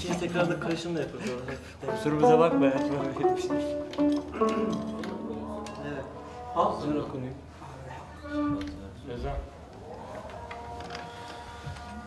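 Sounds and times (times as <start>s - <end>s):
plucked zither: 1.8s - 7.2s.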